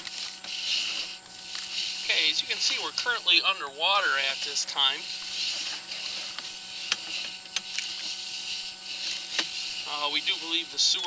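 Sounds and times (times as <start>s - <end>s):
cable hissing in pipe: 0.0s - 11.0s
faint steady hum: 0.0s - 11.0s.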